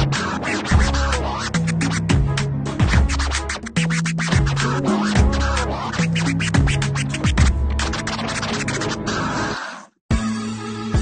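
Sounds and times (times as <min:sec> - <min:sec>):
dj scratching: 0:00.0 - 0:10.0
electronic mix with heavy bass: 0:00.0 - 0:11.0.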